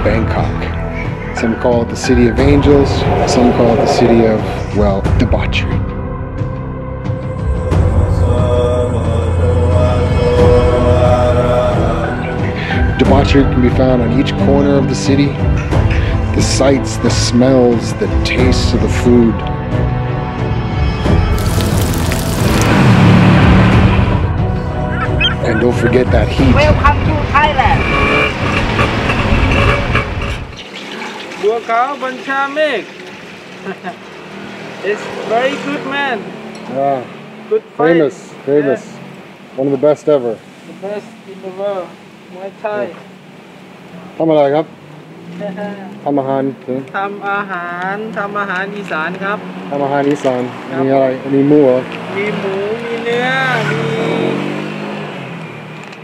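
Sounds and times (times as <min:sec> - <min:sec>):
road noise: 0:00.0 - 0:56.0
vehicle engine passing: 0:01.9 - 0:05.6, 0:21.3 - 0:46.9
tuk-tuk engine running: 0:21.4 - 0:31.2, 0:32.0 - 0:37.1, 0:43.9 - 0:56.0.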